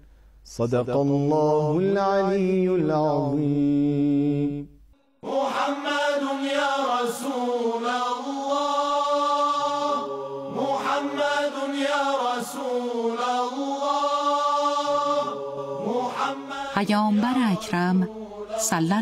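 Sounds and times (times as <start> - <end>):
person chanting: 0.5 - 19.0.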